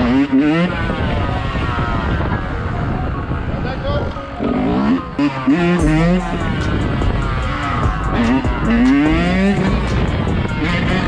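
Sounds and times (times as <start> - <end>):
two-stroke motorcycle engine: 0.0 - 11.0
background music with singing: 4.2 - 11.0.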